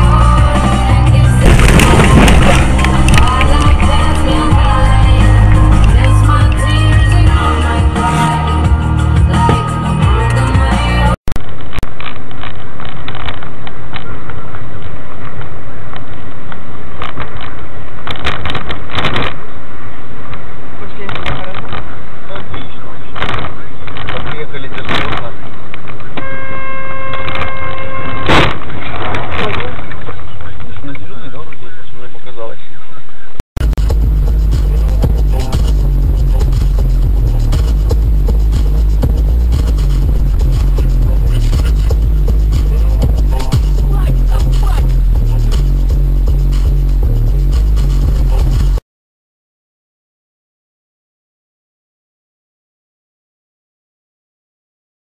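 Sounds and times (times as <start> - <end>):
music with heavy bass: 0.0 - 11.2, 33.6 - 48.8
road and cabin noise: 0.0 - 48.8
car horn long note: 26.2 - 28.6.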